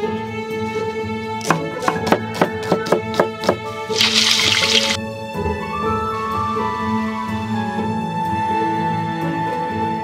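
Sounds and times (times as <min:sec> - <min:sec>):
background music: 0:00.0 - 0:10.0
cleaver chopping on wooden board: 0:01.4 - 0:03.7
fish sizzling in hot oil: 0:03.9 - 0:05.0.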